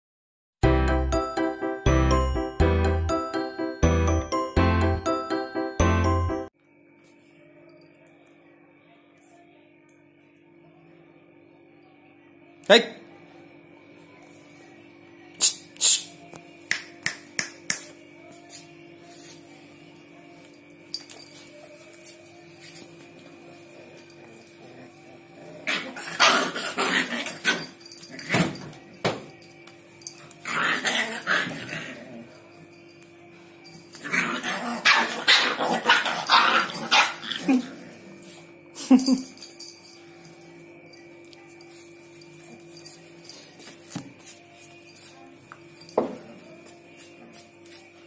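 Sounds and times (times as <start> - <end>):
fingers snapping: 15.4 - 18.0
puppies barking and growling: 23.2 - 28.6, 30.2 - 32.4, 33.9 - 38.4.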